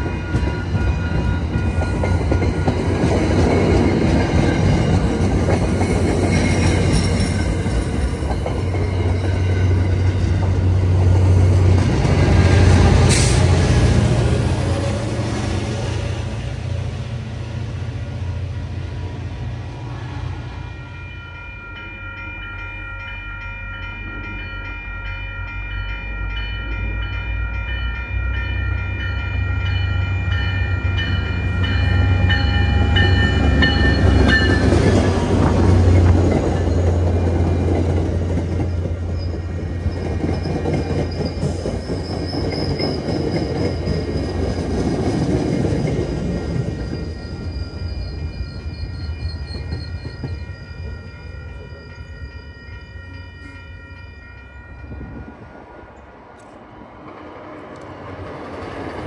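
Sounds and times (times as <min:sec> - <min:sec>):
crossing warning bell ringing: 0:00.0 - 0:17.2, 0:20.3 - 0:56.1
train coaches clattering: 0:00.0 - 0:59.0
train engine rumble: 0:00.0 - 0:59.0.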